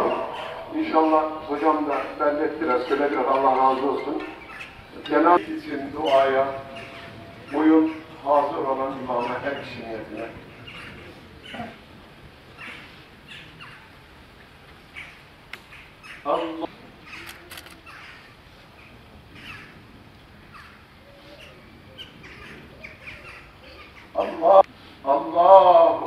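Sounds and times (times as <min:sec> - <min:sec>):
birds calling faintly: 0:00.0 - 0:24.9
man calling out: 0:24.2 - 0:26.0.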